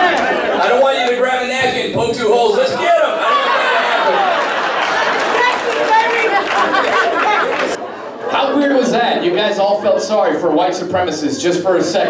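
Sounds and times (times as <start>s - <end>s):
audience talking and laughing: 0.0s - 11.8s.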